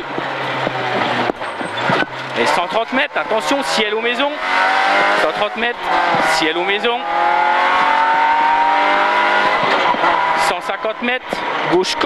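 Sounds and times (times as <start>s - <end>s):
car engine accelerating hard: 0.0s - 12.0s.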